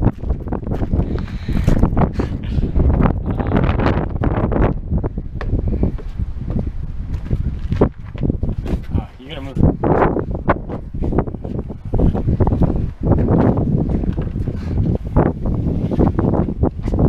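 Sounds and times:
footsteps on gravel and wood: 0.0 - 17.0
wind buffeting microphone: 0.0 - 17.0.

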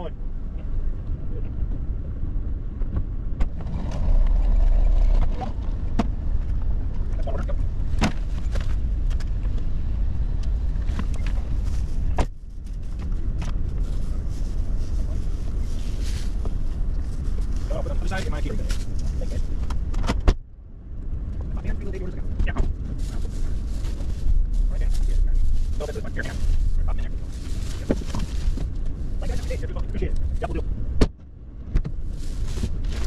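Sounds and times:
steady low rumble: 0.0 - 33.0.

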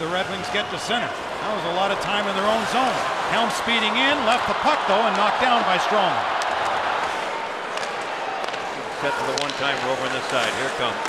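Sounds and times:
crowd noise: 0.0 - 11.0
hockey sticks and puck clicking: 6.4 - 11.0.

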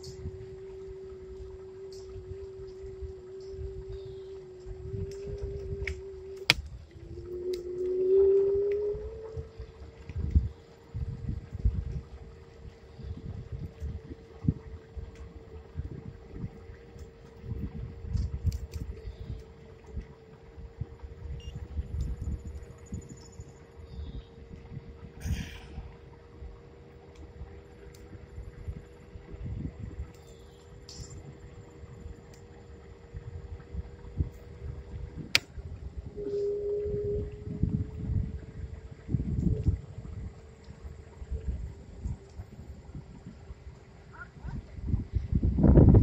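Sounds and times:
vehicle motor whine: 0.0 - 42.8
wind rumble on microphone: 0.0 - 46.0.

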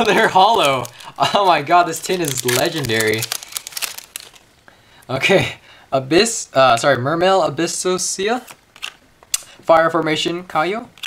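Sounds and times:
foil wrapper crinkling: 0.0 - 4.5.

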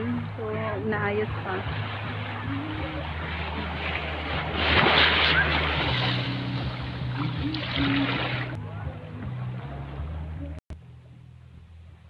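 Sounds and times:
small waves washing onto shore: 0.0 - 8.6.

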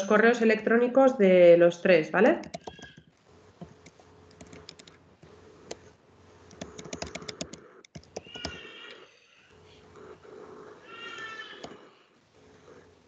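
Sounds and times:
computer keyboard typing: 2.4 - 5.9, 6.5 - 9.0.

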